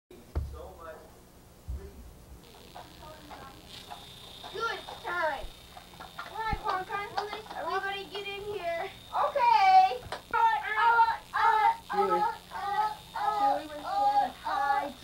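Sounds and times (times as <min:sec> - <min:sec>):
faint steady high whine: 0:00.1 - 0:15.0.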